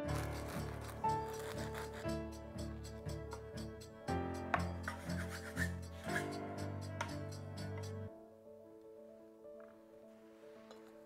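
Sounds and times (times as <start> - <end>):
instrumental background music: 0.0 - 11.0
cleaver scraping dough on board: 0.1 - 2.2.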